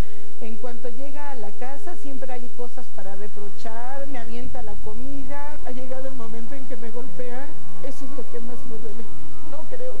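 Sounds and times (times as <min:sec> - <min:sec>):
woman speaking: 0:00.0 - 0:10.0.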